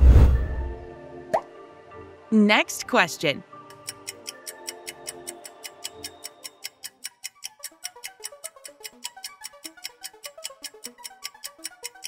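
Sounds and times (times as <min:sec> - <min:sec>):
soft background music: 0:00.1 - 0:12.0
countdown timer ticking: 0:02.4 - 0:12.0.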